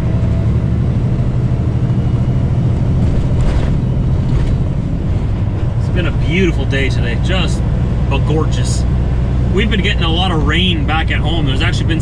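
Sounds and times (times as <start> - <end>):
truck diesel engine and tyres droning: 0.0 - 12.0.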